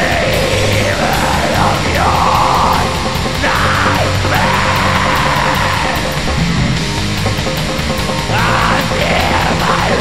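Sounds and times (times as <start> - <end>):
harsh screamed vocals: 0.0 - 6.3, 8.3 - 10.0
distorted guitars and drums: 0.0 - 10.0.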